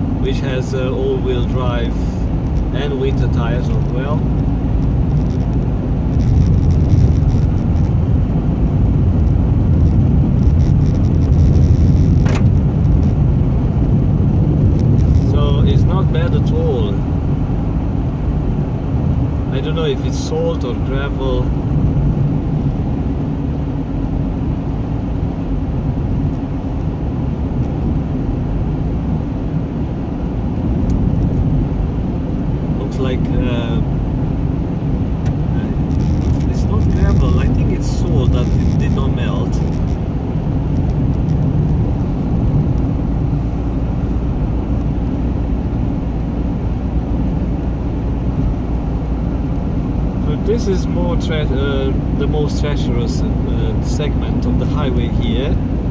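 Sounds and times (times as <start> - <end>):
car driving on icy road: 0.0 - 55.9.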